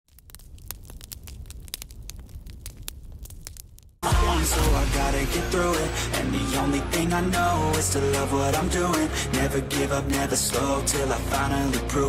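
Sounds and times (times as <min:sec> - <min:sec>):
fire crackling and popping: 0:00.0 - 0:05.9.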